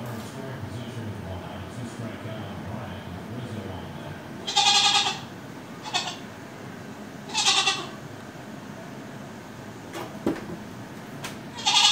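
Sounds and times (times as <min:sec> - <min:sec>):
goat bleating: 0:04.4 - 0:06.3, 0:07.3 - 0:08.0, 0:11.5 - 0:11.9.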